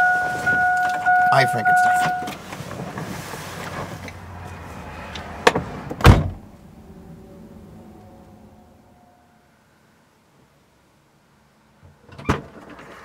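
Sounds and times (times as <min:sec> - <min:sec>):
rustling movement: 0:01.9 - 0:09.0
car door closing thump: 0:05.4 - 0:06.4.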